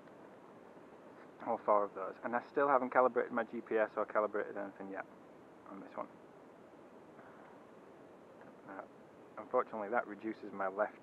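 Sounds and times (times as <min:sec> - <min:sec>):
faint steady background hiss: 0:00.0 - 0:11.0.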